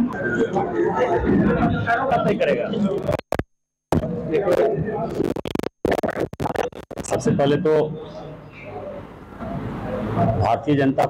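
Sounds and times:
chopped voice fragments: 0:02.2 - 0:07.6.

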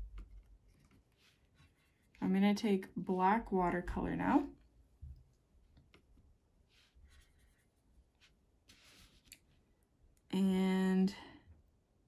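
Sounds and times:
paint brush brushing on paper: 0:00.9 - 0:02.2, 0:06.6 - 0:09.6.

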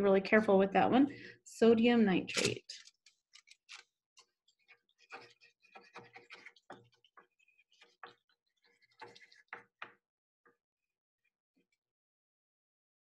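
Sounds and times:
pencil scratching on paper: 0:05.0 - 0:08.0.

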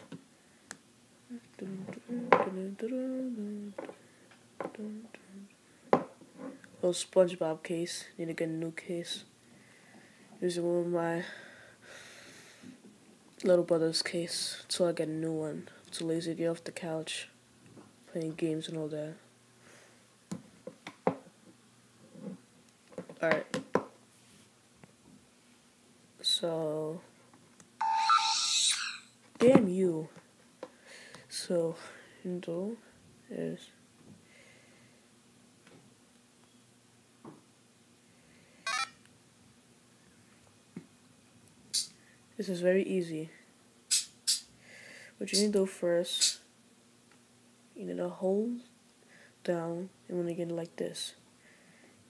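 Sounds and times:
person humming: 0:01.3 - 0:03.9, 0:04.7 - 0:05.5
electronic beeps: 0:27.8 - 0:29.1.

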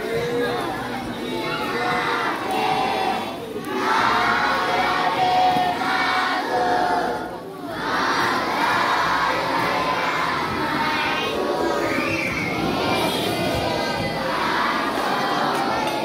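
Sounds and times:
children shouting: 0:00.0 - 0:16.0.

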